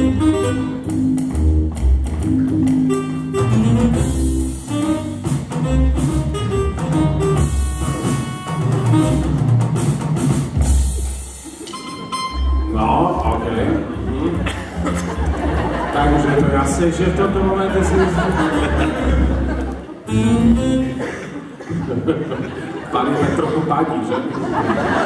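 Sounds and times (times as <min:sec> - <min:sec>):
instrumental music with drum beat: 0:00.0 - 0:12.7.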